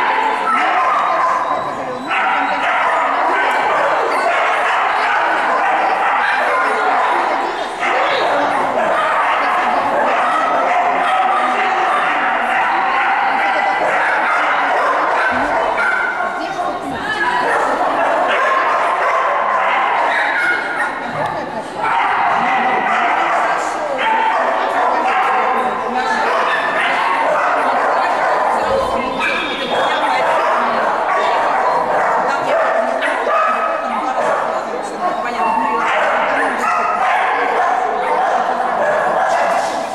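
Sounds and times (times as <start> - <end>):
dog barking and yipping: 0.0 - 16.4, 17.5 - 21.1, 21.8 - 34.4, 35.5 - 39.8
indistinct voices: 0.0 - 39.9
people talking: 0.0 - 39.9.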